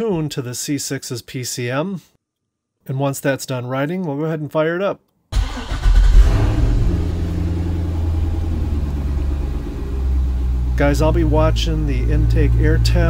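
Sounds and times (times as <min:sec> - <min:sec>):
car engine starting and idling: 0:05.4 - 0:13.0.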